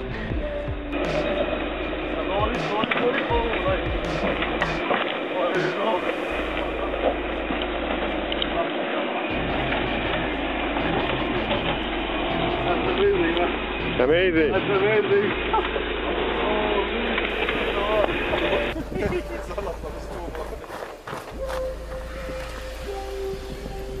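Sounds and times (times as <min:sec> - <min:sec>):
background music: 0:00.0 - 0:08.6, 0:09.3 - 0:24.0
indistinct voices: 0:00.0 - 0:24.0.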